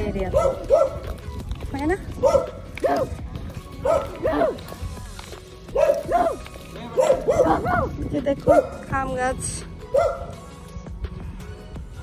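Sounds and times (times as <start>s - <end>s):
dog barking: 0.3s - 1.1s, 2.2s - 3.2s, 3.8s - 4.6s, 5.7s - 8.8s, 9.9s - 10.3s.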